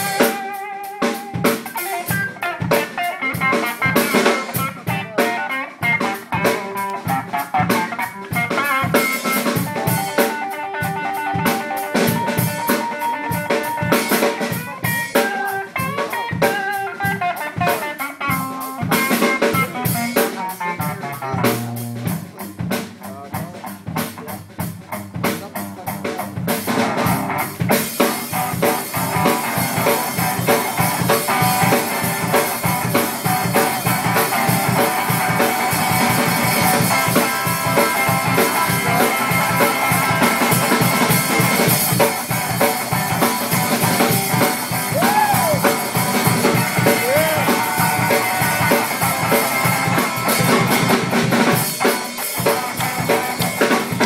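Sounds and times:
drum beat: 0.0s - 54.0s
electric guitar chords and riffs: 0.0s - 54.0s.

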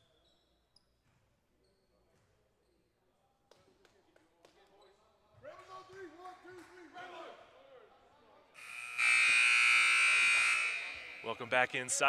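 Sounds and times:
loud harsh electric buzz: 8.6s - 11.5s.

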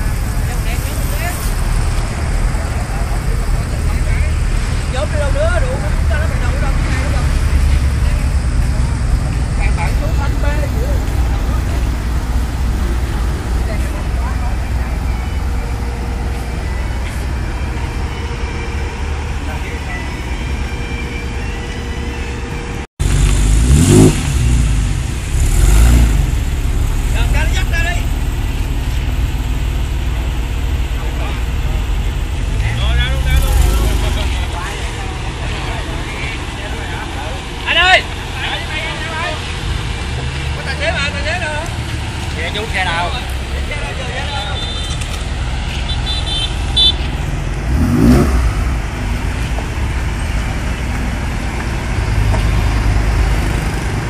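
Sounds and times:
car engine idling: 0.0s - 54.0s
car engine revving: 23.0s - 44.2s, 44.9s - 54.0s.

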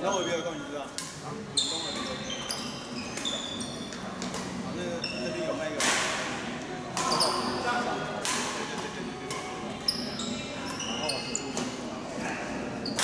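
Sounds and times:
sneakers squeaking on court: 1.5s - 5.4s, 7.0s - 7.7s, 9.8s - 11.8s
rackets hitting shuttlecock: 5.7s - 10.0s.

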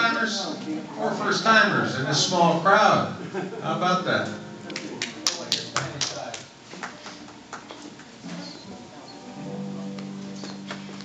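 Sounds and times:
scattered handclaps: 4.7s - 8.2s.

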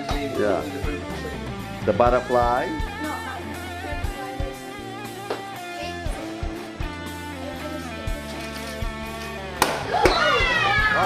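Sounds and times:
rock song with guitar and drums: 0.0s - 11.0s.

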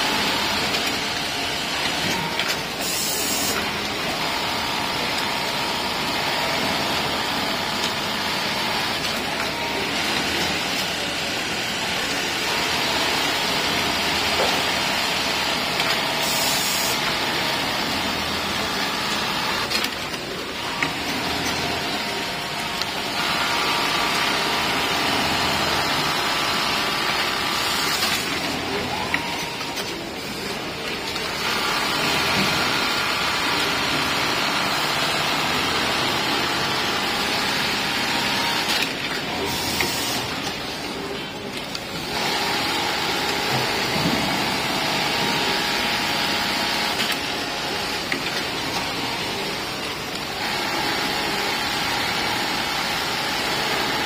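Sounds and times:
industrial sewing machines running: 0.0s - 54.0s.

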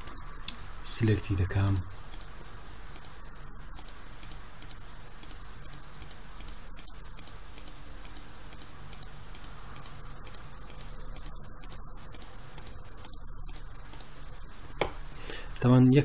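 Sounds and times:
low hum and hiss: 0.0s - 16.0s
faint computer mouse clicks: 3.8s - 14.1s.

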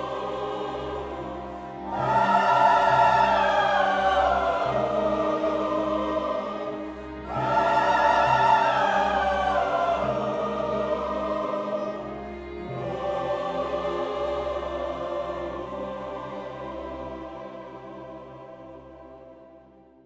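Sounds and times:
symphony orchestra playing: 0.0s - 19.6s
mixed choir singing: 0.0s - 20.0s.

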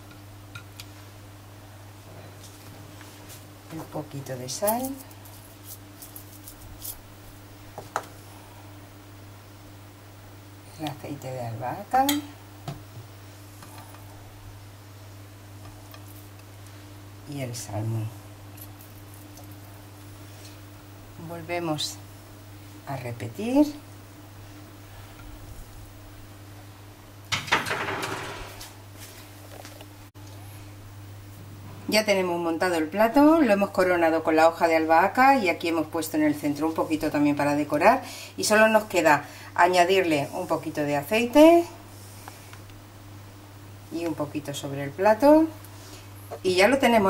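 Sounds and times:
steady low hum: 0.0s - 27.4s, 28.4s - 47.0s.

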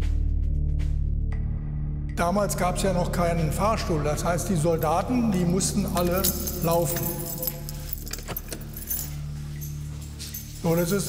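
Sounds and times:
keys jangling on key ring: 5.3s - 11.0s.

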